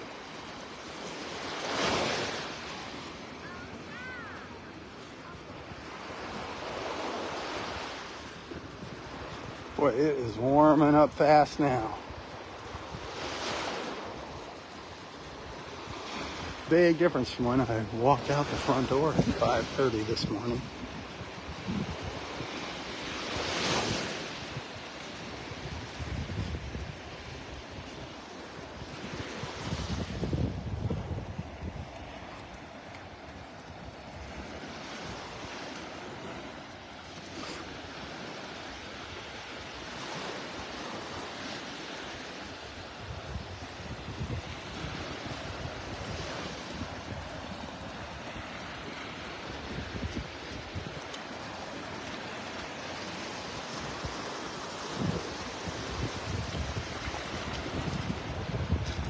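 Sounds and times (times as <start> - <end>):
surf washing up sand: 0.0 - 59.0
wind buffeting microphone: 18.5 - 35.7, 42.8 - 51.6, 53.6 - 59.0.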